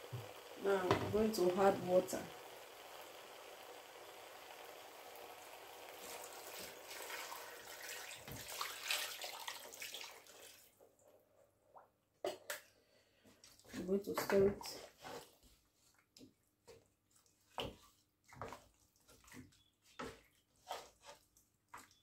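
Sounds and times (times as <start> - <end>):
faint steady hiss: 0.0 - 8.5
water splashing into a pot: 0.0 - 10.8.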